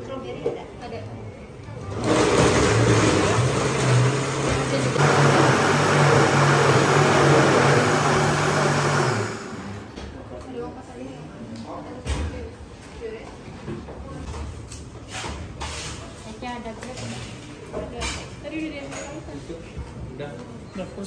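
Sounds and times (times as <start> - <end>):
blender running: 1.9 - 10.0.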